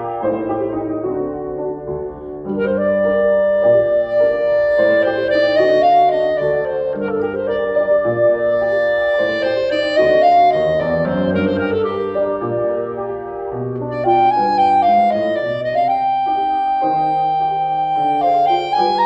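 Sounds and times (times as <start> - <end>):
clarinet melody: 0.0 - 19.0
grand piano playing: 0.0 - 19.0.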